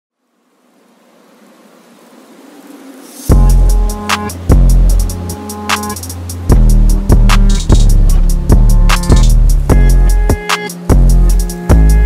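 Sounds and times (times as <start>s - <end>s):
electronic music with bass drop: 3.3s - 12.0s.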